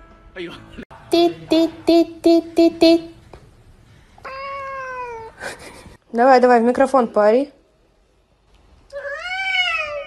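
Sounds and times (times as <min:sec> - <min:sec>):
cat meowing: 0:08.9 - 0:10.0.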